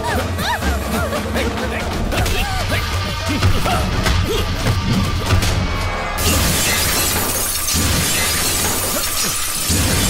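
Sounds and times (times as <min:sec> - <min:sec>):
film music: 0:00.0 - 0:10.0
glass shattering: 0:06.2 - 0:10.0.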